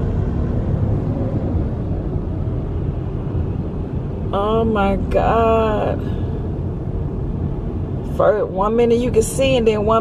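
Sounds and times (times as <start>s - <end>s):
tyre and wind noise in car: 0.0s - 4.4s, 5.9s - 8.2s.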